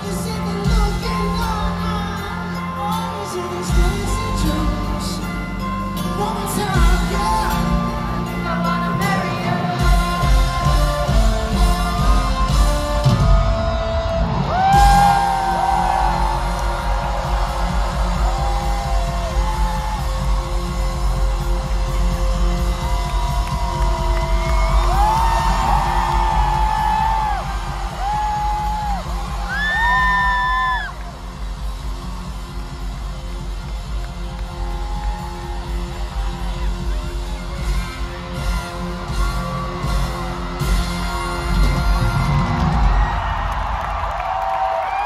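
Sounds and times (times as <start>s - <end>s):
crowd cheering and screaming: 0.0s - 45.0s
live pop band music: 0.0s - 45.0s
fans whooping: 11.6s - 45.0s.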